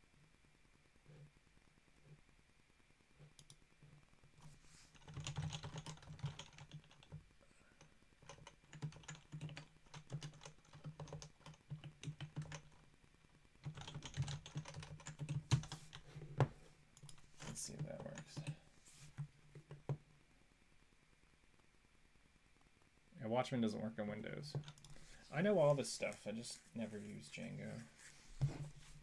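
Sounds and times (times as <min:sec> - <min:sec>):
keyboard typing: 0:04.4 - 0:07.2, 0:08.2 - 0:12.8, 0:13.6 - 0:18.6, 0:24.5 - 0:25.0.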